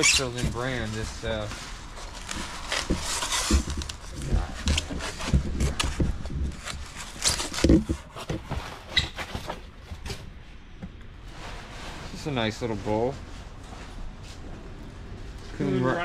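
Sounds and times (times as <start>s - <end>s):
packing material rustling: 0.0s - 9.8s.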